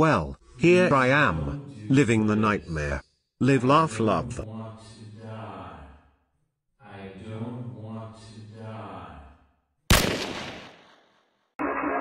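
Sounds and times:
sharp gunshot: 9.9s - 11.0s.

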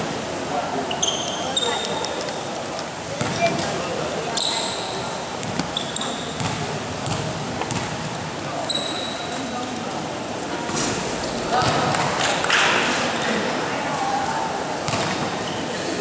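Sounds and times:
chatter echoing in a hall: 0.0s - 16.0s
sneakers squeaking: 0.8s - 2.5s, 3.1s - 9.6s, 14.8s - 16.0s
basketball bouncing on gym floor: 3.2s - 3.7s, 5.4s - 8.1s, 11.6s - 12.1s, 14.9s - 15.3s.

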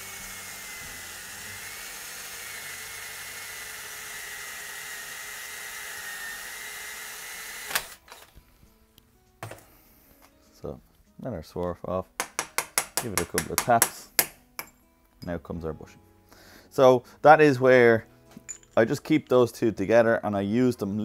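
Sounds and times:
cordless drill motor whine: 0.0s - 8.3s.

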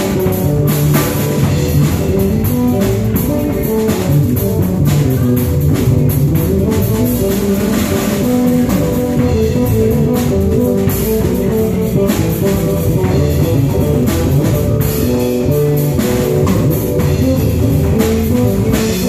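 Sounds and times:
double bass playing: 0.0s - 19.0s
drum kit: 0.0s - 19.0s
electric bass guitar playing: 0.0s - 19.0s.

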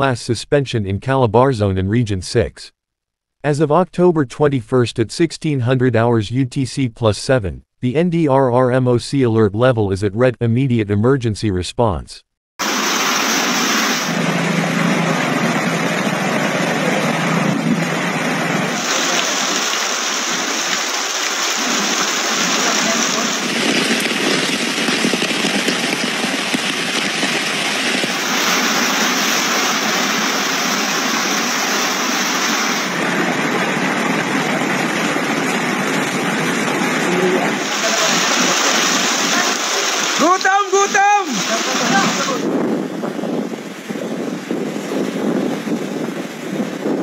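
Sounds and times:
floodwater rushing: 12.6s - 42.6s
rain: 12.6s - 47.0s
strong wind: 12.6s - 47.0s.

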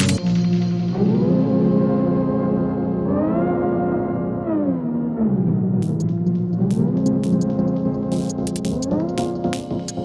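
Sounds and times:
sustained synthesizer chord: 0.0s - 10.0s.

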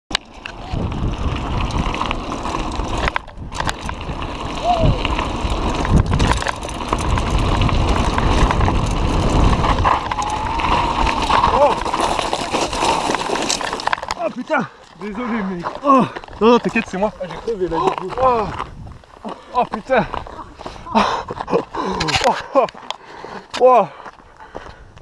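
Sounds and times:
tyres crunching on gravel: 0.2s - 24.8s
wind buffeting microphone: 0.5s - 13.0s, 15.0s - 22.1s.

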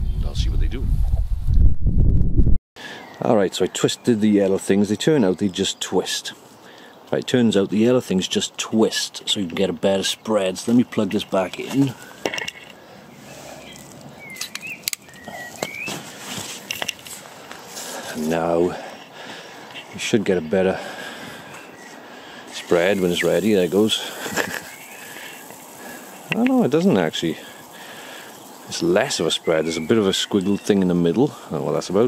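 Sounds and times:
wind buffeting microphone: 0.0s - 2.6s
outdoor background noise: 2.8s - 32.0s
bird chirps: 12.8s - 16.0s, 19.8s - 31.4s.

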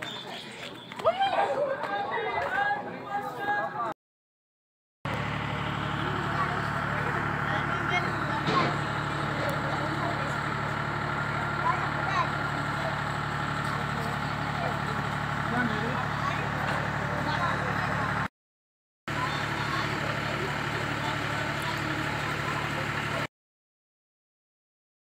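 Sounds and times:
engine-like hum: 0.0s - 3.6s, 5.1s - 18.3s, 19.1s - 23.3s
faint voices talking: 0.0s - 3.9s, 5.1s - 18.3s, 19.1s - 23.3s.

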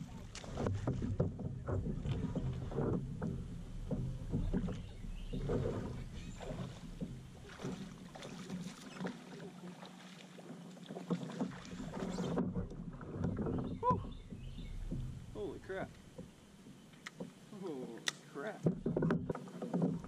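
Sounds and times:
wind rumble on microphone: 0.0s - 8.0s, 11.8s - 16.2s
water lapping against kayak hull: 0.0s - 20.0s
small knocks and clicks: 15.9s - 17.4s.

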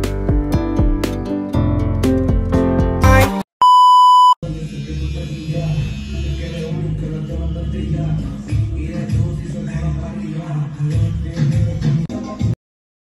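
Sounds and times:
guitar music: 0.0s - 3.4s
electronic beep tone: 3.6s - 4.4s.

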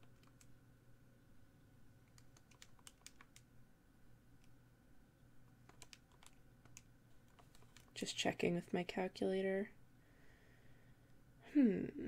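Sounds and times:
key presses: 2.1s - 3.4s, 5.6s - 8.0s.

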